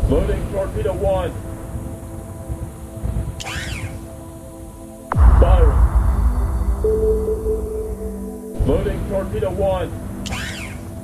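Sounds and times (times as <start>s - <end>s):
held synth tones: 5.1s - 10.9s
high warbling sweep: 5.1s - 10.9s
low rumble: 5.1s - 11.0s.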